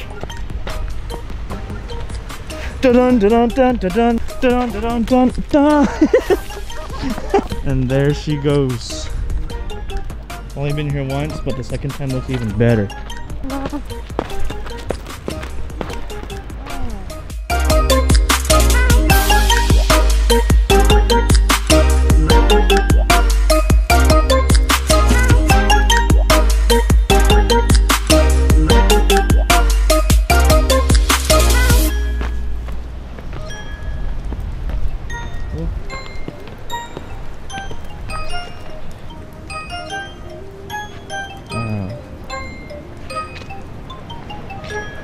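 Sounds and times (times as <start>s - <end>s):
background music with steady beat: 0.0s - 33.6s
background music with heavy beat: 16.4s - 32.0s
bell-like single notes: 35.1s - 45.0s.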